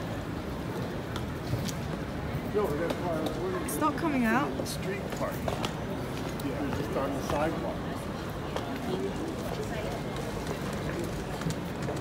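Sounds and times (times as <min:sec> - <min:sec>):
faint voices of passers-by: 0:00.0 - 0:12.0
low city rumble: 0:00.0 - 0:12.0.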